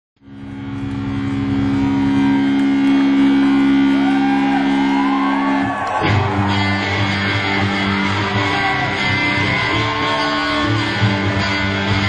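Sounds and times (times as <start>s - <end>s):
low droning notes: 0.2s - 12.0s.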